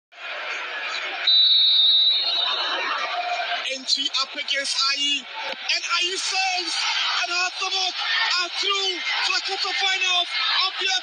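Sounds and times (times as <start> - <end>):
stadium background noise: 0.1 - 11.0
referee whistle blast: 1.2 - 2.5.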